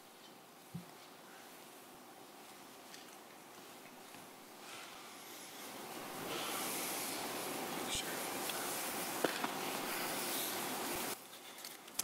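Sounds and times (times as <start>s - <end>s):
rustling and shuffling: 0.0s - 12.0s.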